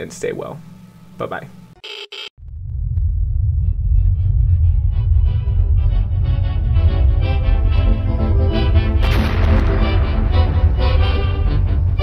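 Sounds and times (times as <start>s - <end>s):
deep blast rumble: 2.4s - 12.0s.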